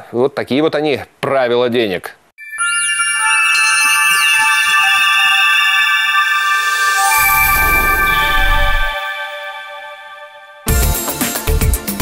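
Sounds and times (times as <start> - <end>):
high synth pitch sweeps: 2.4 - 10.4
held synth tones: 2.4 - 10.6.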